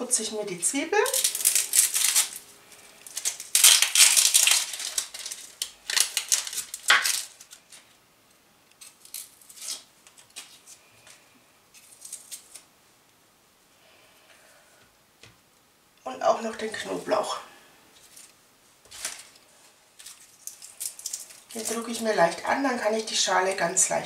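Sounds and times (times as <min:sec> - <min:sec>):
onion skins crackling: 0:00.0 - 0:12.8, 0:16.2 - 0:24.0.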